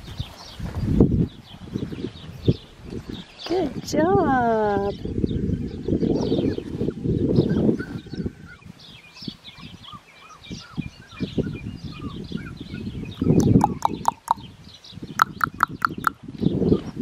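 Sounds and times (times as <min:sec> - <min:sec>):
birds chirping: 0:04.8 - 0:16.8
sharp quick bird chips: 0:13.4 - 0:14.5, 0:15.2 - 0:16.2.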